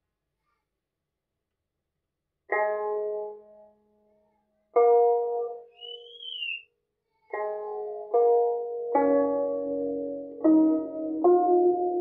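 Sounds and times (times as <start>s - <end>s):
guzheng strings plucked: 2.5s - 3.4s
faint high whistle-like tone: 5.7s - 6.7s.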